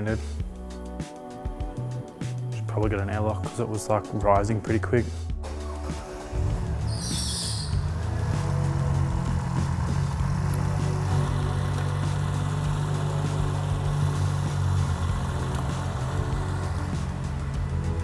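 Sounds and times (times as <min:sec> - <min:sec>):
car engine idling: 0:05.4 - 0:18.0.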